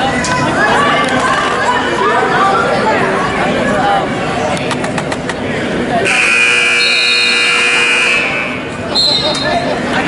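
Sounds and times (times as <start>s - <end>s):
people chattering: 0.0s - 10.0s
scoreboard buzzer tone: 6.1s - 8.7s.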